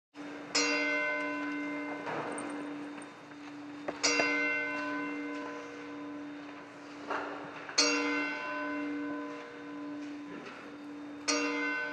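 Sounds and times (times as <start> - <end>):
church bell tolling: 0.2 - 11.9.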